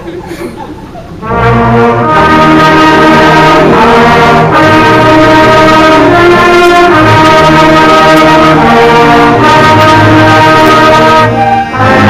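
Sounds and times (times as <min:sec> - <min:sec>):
concert band playing a march: 0:01.2 - 0:12.0.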